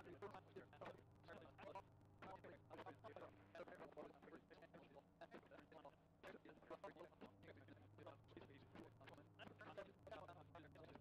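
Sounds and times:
faint indistinct speech: 0.0s - 11.0s.

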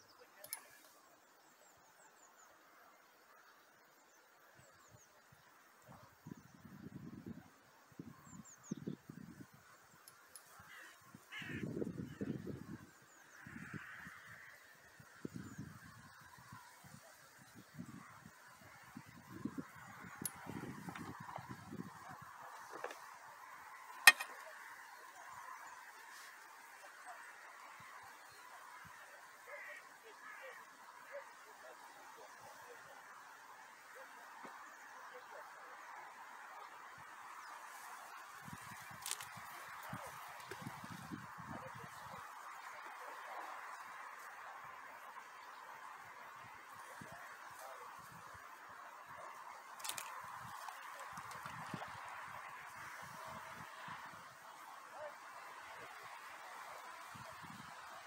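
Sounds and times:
geese honking: 29.1s - 32.5s.

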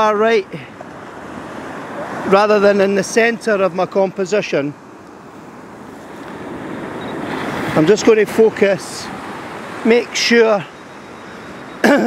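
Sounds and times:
sea waves washing up beach: 0.0s - 11.8s.

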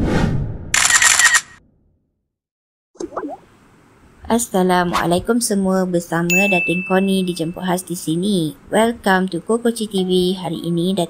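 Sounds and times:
camera shutter click: 0.8s - 1.6s.

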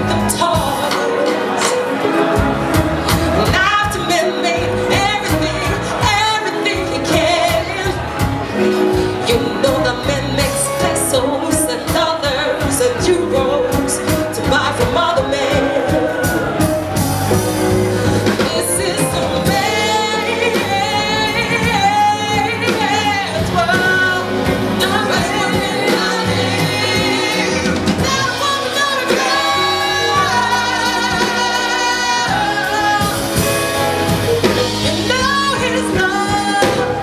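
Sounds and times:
woman singing soul ballad: 0.0s - 2.2s, 3.1s - 37.0s
band with drums and guitar: 0.0s - 37.0s
female backing singers: 9.3s - 17.0s, 18.2s - 33.8s.

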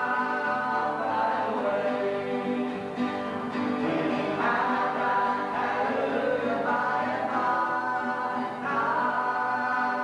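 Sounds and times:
acoustic guitar: 0.0s - 10.0s
gospel group singing in harmony: 0.0s - 10.0s.

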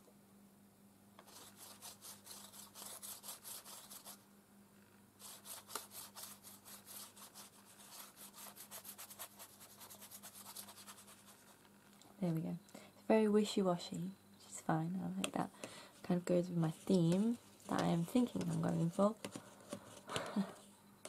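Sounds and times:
paintbrush stroking on paper: 1.2s - 4.2s, 5.2s - 11.6s, 16.0s - 20.0s.

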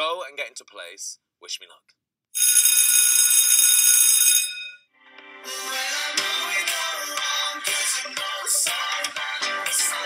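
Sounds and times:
electric bell ringing: 2.4s - 4.9s.

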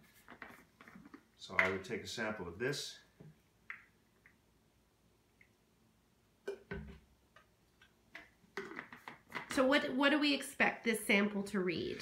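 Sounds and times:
plastic caps and cups clicking: 6.4s - 9.6s.

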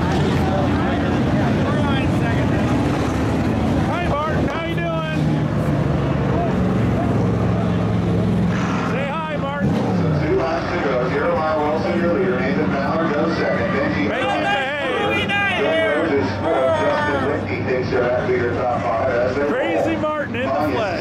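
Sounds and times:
race car engines circling track: 0.0s - 21.0s
voices: 0.0s - 21.0s.

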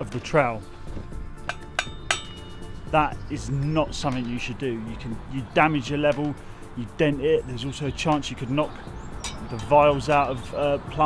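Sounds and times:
trowel striking metal level: 1.4s - 2.7s.

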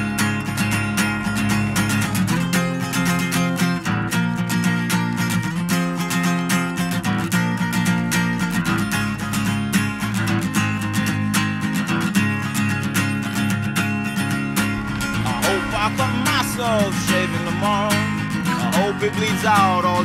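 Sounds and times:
acoustic guitar strumming: 0.0s - 20.0s.

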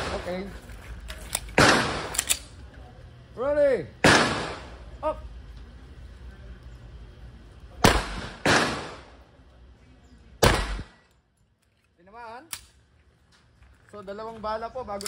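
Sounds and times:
pistol shots ringing off walls: 4.0s - 4.8s, 7.8s - 9.2s, 10.4s - 11.1s.

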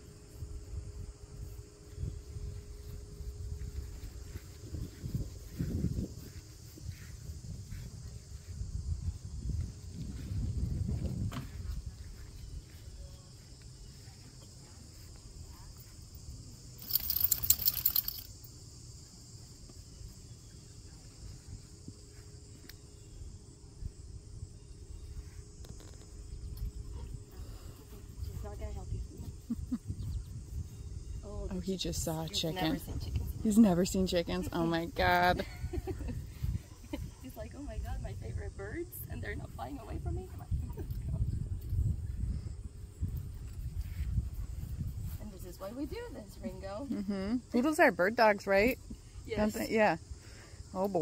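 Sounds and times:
insects chirping in grass: 0.0s - 51.0s.

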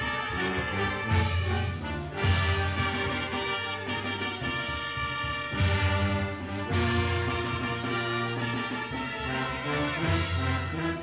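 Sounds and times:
brass band playing slow march: 0.0s - 11.0s.

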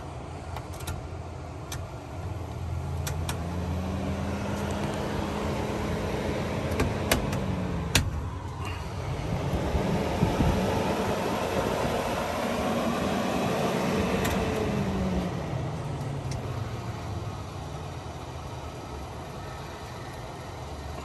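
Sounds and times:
vent fan motor hum: 0.0s - 21.0s.

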